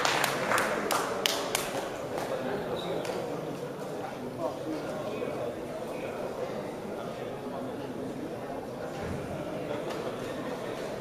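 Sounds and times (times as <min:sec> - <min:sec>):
audience hand clapping: 0:00.0 - 0:02.4.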